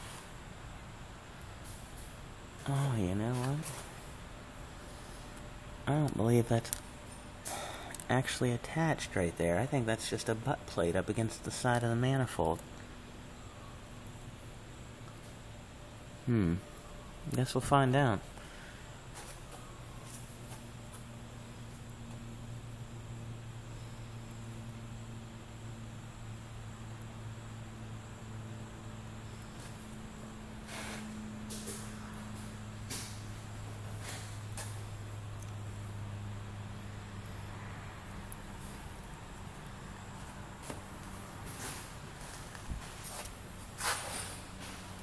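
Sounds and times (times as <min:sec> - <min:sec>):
steady low hum: 0:00.0 - 0:45.0
footsteps: 0:40.2 - 0:44.9.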